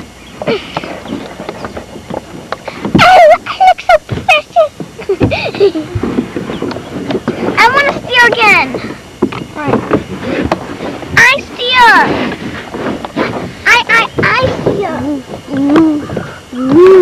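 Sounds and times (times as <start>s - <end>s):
lower voices: 2.5s - 17.0s
child's high-pitched voice: 7.6s - 8.8s, 11.2s - 12.1s, 13.7s - 16.0s.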